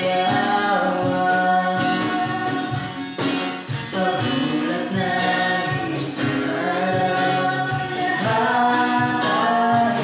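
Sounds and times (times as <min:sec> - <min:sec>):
man and woman singing duet: 0:00.0 - 0:10.0
strummed acoustic guitar: 0:00.0 - 0:10.0.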